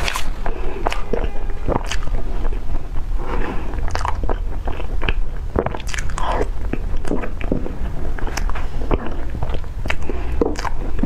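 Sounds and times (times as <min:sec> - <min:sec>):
chewing cake: 0:00.0 - 0:11.0.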